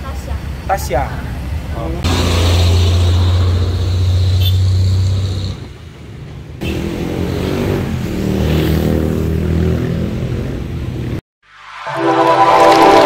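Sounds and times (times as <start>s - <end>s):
vehicle engine shifting pitch: 11.6s - 13.0s.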